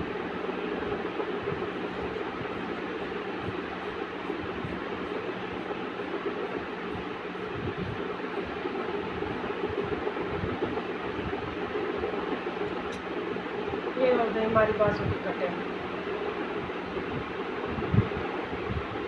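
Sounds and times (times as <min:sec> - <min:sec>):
machine running hum: 0:00.0 - 0:19.0.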